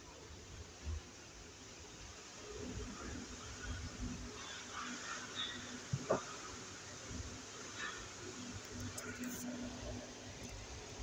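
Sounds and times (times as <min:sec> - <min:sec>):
faint lift drive hum: 0:00.0 - 0:11.0.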